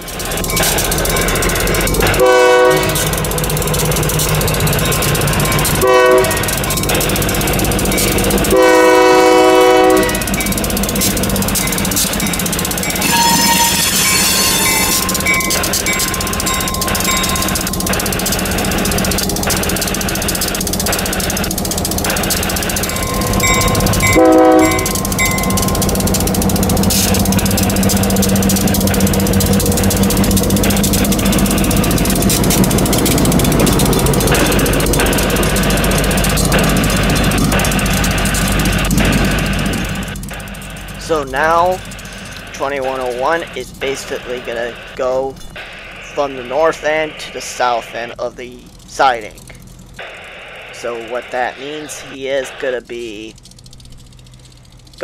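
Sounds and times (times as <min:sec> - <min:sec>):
locomotive engine droning: 0:00.0 - 0:55.0
wheels clicking over rails: 0:00.0 - 0:55.0
locomotive air horn: 0:02.0 - 0:03.3, 0:05.7 - 0:06.8, 0:08.4 - 0:10.5, 0:12.8 - 0:18.8, 0:22.8 - 0:30.8.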